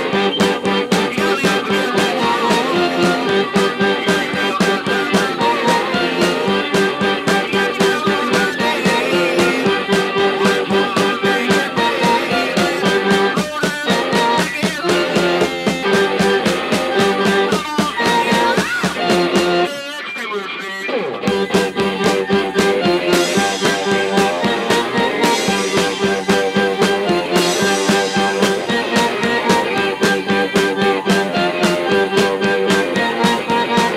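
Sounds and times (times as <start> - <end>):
person singing: 0.0 - 33.9
rock band playing: 0.0 - 33.9.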